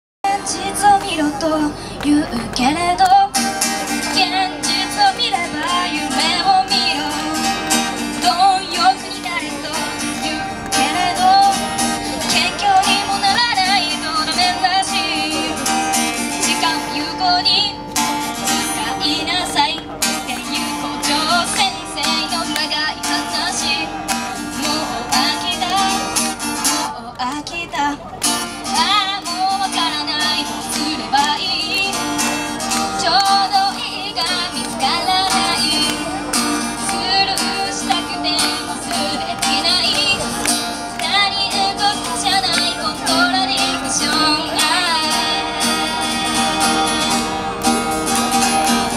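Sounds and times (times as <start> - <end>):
woman singing: 0.2 - 17.9, 18.5 - 47.3
acoustic guitar: 0.2 - 48.9.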